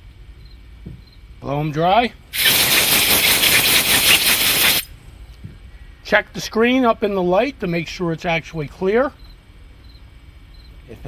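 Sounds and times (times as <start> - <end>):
compressed air hissing from blow gun: 2.3 - 4.9.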